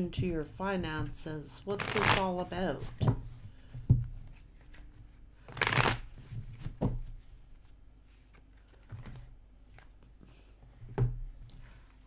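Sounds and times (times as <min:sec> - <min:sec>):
cards riffling: 0:05.5 - 0:06.1.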